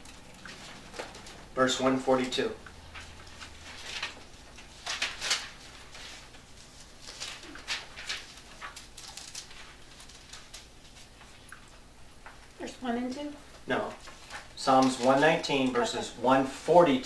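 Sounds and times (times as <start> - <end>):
thin pages turning and rustling: 0.4 - 11.4, 13.9 - 15.4.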